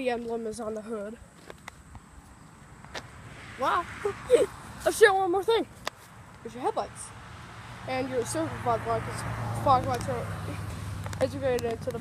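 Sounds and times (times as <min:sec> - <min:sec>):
distant highway traffic: 0:00.0 - 0:12.0.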